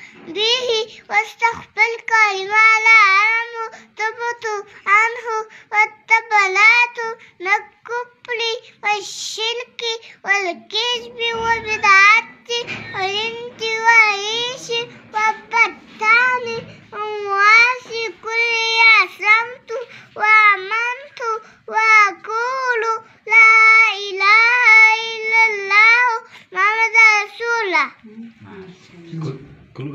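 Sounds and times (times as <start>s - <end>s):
toddler girl sing-song chanting: 1.0s - 27.8s
child breathing: 3.7s - 4.0s, 5.4s - 5.8s, 19.8s - 20.2s.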